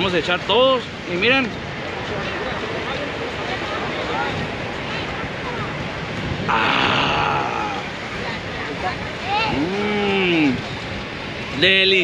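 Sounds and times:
surf washing: 0.0s - 12.0s
wind on microphone: 0.0s - 12.0s
faint voices: 1.8s - 11.8s.

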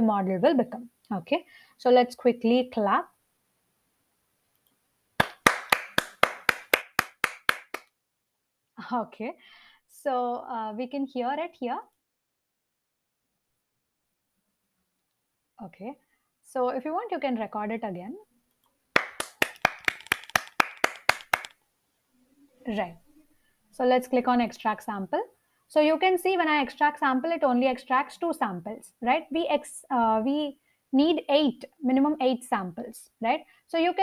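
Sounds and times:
hands clapping: 5.2s - 7.9s, 19.0s - 21.6s.

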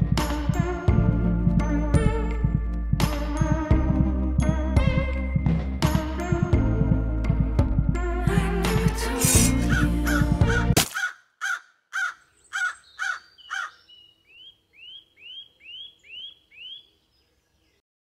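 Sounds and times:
music: 0.0s - 10.8s
higher arched bird calls: 9.6s - 17.4s
crow cawing: 9.7s - 13.8s.

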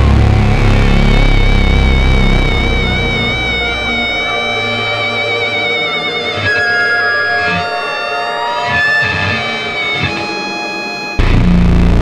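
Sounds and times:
loud dense bass-heavy music: 0.0s - 6.2s, 11.2s - 12.0s
gliding synthesizer and guitar tones: 0.0s - 12.0s.

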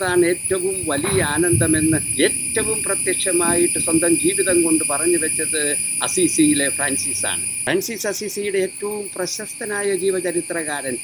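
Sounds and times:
high-pitched insect drone: 0.0s - 11.0s
man talking: 0.0s - 11.0s.

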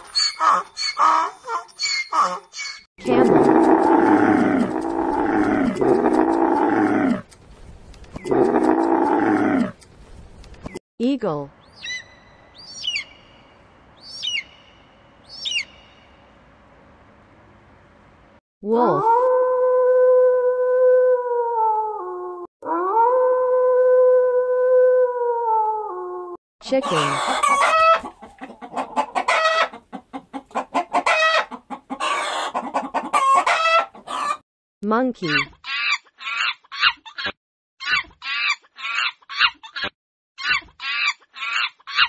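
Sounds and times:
wolf howling: 18.9s - 26.4s.

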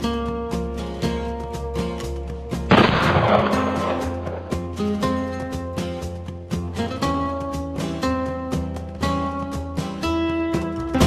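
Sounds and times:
plucked acoustic guitar music: 0.0s - 11.0s
pistol shot bang: 2.7s - 4.6s.

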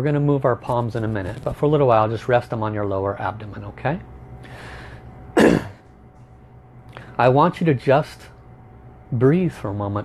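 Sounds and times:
man clearing his throat: 5.4s - 5.8s.

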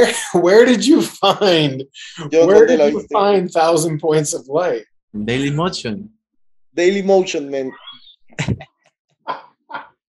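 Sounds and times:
man laughing: 0.0s - 3.8s, 8.4s - 8.6s.

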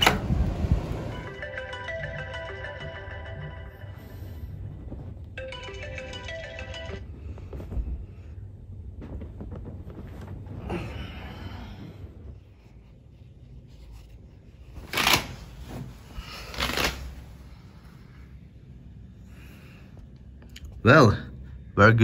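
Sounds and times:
smartphone alarm ringtone melody: 1.2s - 4.4s, 5.4s - 7.1s.

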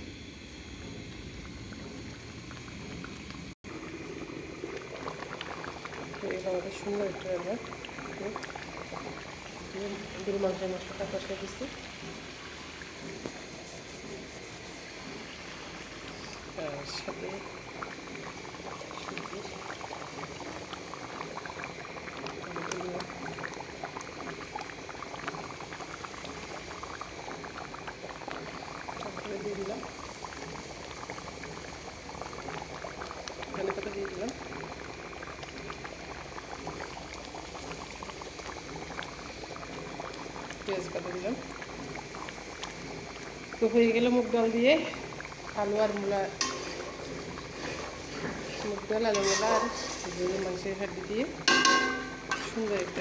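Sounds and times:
thick curry sauce bubbling: 0.1s - 53.0s.

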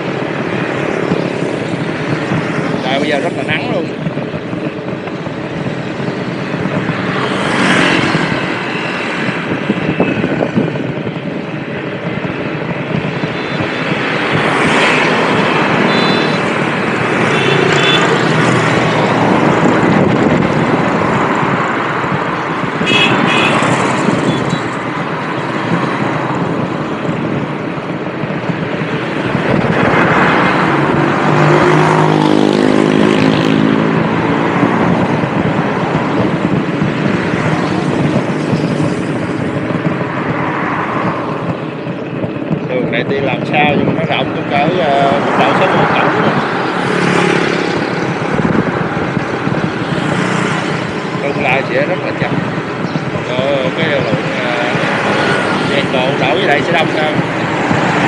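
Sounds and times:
road noise rushing: 0.0s - 58.0s
vehicles passing: 0.0s - 58.0s.

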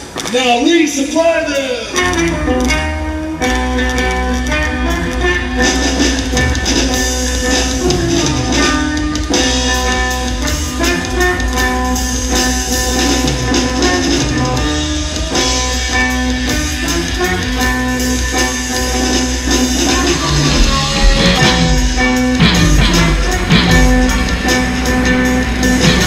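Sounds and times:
drum kit playing: 1.6s - 26.0s
ukulele with effects: 19.8s - 24.2s.

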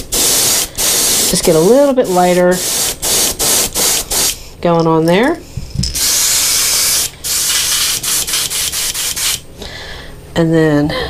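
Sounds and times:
airbrush spraying paint: 0.0s - 4.5s, 6.0s - 9.4s.

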